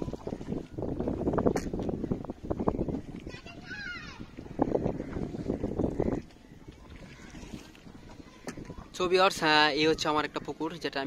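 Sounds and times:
water washing around boat: 0.0 - 11.0
wind: 0.0 - 11.0.

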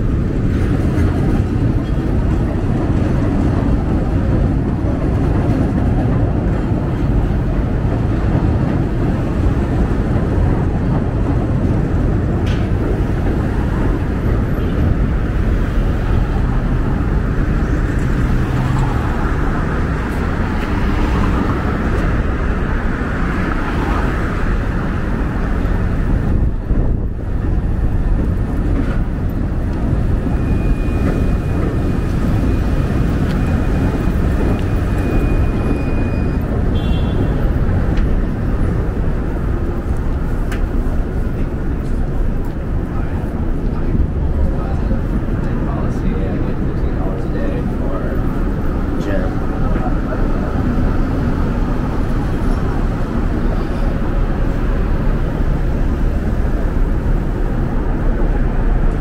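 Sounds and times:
traffic rumble: 0.0 - 59.0.

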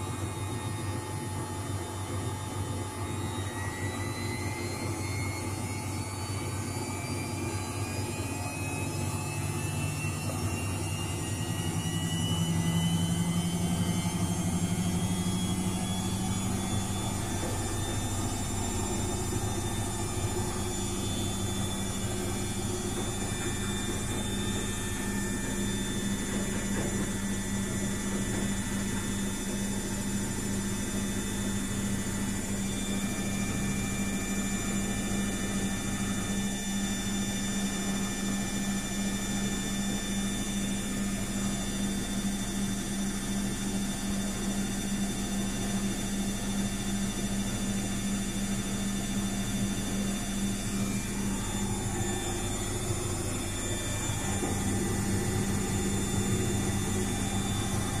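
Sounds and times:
washing machine motor whine: 0.0 - 58.0
low hum: 11.3 - 28.4, 48.6 - 58.0.

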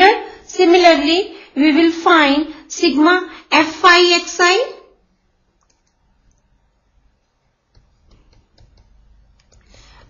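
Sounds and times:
stylus tapping on pen tablet: 7.7 - 9.7.

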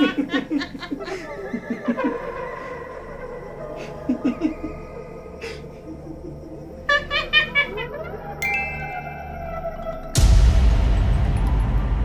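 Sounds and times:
woman laughing: 0.0 - 2.8.

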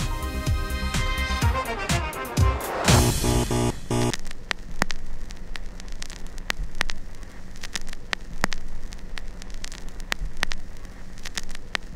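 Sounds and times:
static clicks: 2.9 - 11.9
steady low hum: 2.9 - 11.9.

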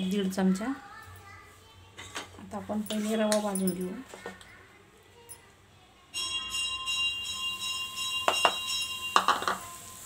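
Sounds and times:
bell-like ringing: 6.1 - 10.0.

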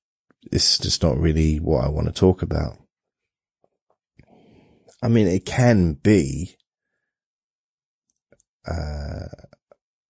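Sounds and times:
man saying uh: 8.7 - 9.5.

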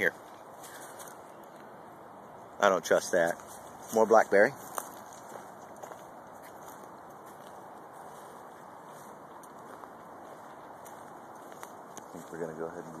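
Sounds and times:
steady background hiss: 0.0 - 13.0
footsteps on leafy dirt trail: 0.1 - 1.8, 2.8 - 13.0.

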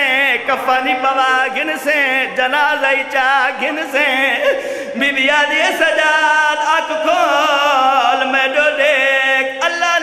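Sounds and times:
man chanting a mournful lament: 0.0 - 10.0.

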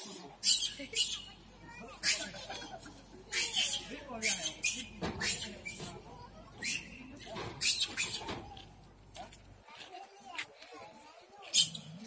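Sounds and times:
people talking: 0.0 - 12.0
macaques squealing: 0.1 - 6.0, 6.6 - 8.3, 11.5 - 12.0.

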